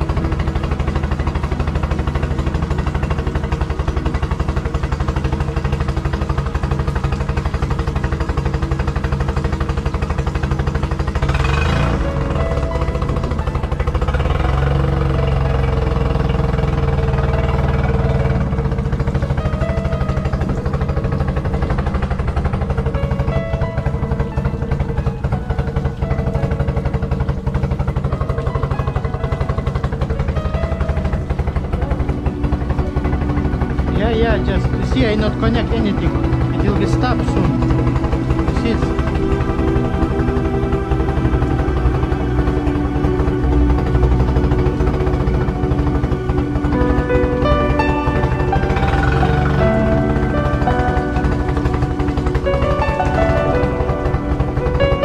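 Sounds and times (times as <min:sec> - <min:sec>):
outboard motor running: 0:00.0 - 0:55.0.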